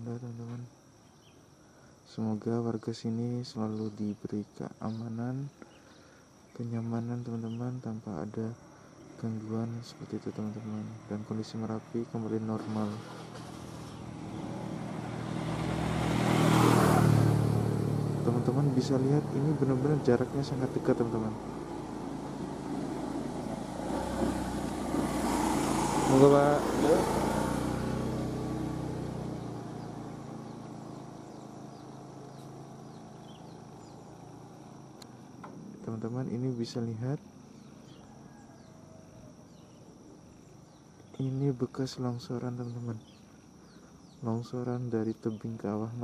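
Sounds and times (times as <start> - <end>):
faint chirps: 0.0 - 14.6, 28.2 - 46.0
high-pitched insect drone: 0.0 - 38.8
vehicle engine passing by: 12.6 - 35.0.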